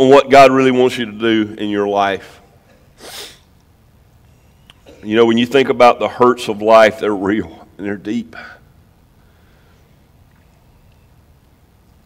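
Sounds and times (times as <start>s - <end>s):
quick breath into microphone: 3.0s - 3.5s, 9.2s - 10.0s.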